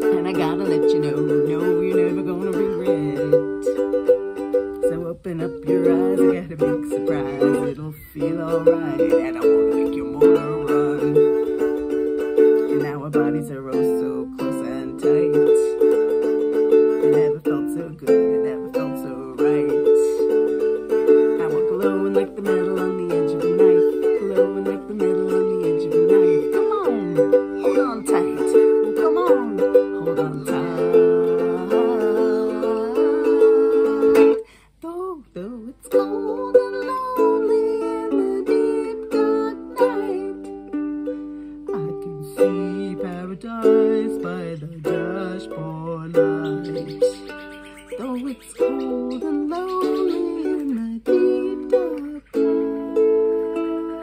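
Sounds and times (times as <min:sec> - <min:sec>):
ukulele strumming chords: 0:00.0 - 0:54.0.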